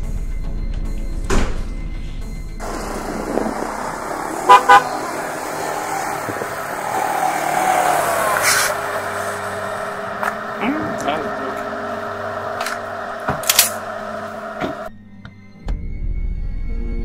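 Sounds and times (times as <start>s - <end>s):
car horn tooting: 2.6s - 6.3s
vehicle engine running: 2.6s - 15.0s.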